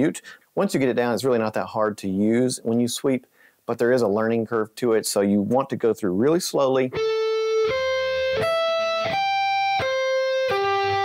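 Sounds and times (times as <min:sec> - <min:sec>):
electric guitar arpeggio: 0:06.9 - 0:11.0.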